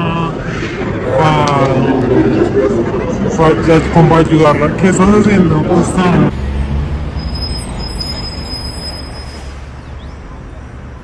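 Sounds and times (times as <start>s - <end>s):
steady low rumble: 0.0s - 6.3s.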